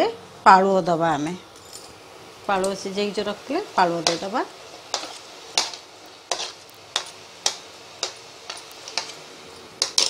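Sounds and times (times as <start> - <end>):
gravy sizzling: 0.6 - 10.0
spatula scraping metal pan: 4.0 - 10.0.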